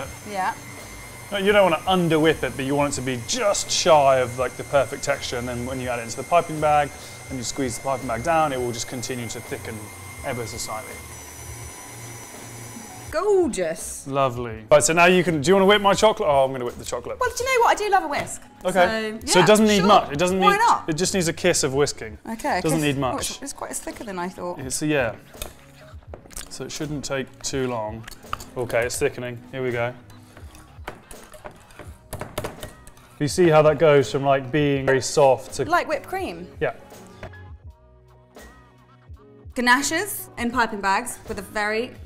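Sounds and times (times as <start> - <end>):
stand mixer whisk humming: 0.0 - 13.2.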